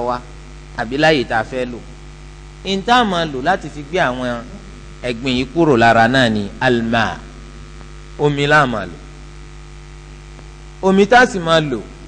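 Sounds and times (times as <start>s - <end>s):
man speaking: 0.0s - 1.9s, 2.6s - 7.4s, 8.2s - 9.1s, 10.8s - 12.0s
electrical mains hum: 0.0s - 12.0s.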